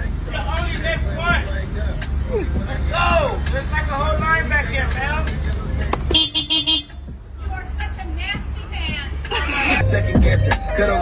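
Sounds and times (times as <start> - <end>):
car stereo bass beat: 0.0 - 11.0
voices: 0.0 - 11.0
car horn honking: 6.0 - 7.6.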